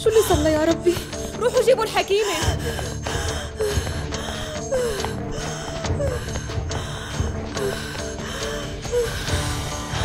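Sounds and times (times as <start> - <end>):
low dramatic music: 0.0 - 10.0
woman gasping and moaning: 0.0 - 10.0.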